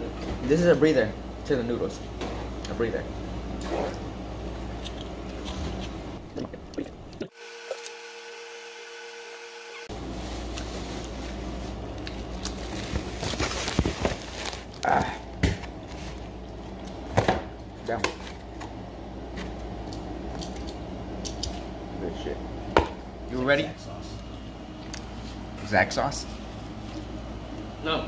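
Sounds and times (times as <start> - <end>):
steady low hum: 0.0 - 7.9, 9.8 - 28.0.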